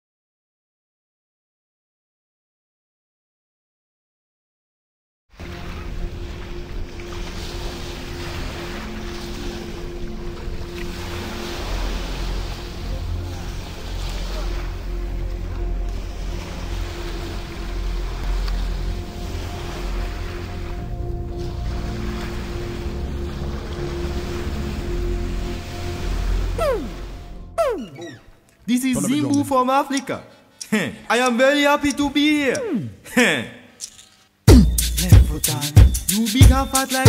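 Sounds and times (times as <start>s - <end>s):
ocean surf: 5.4s - 27.8s.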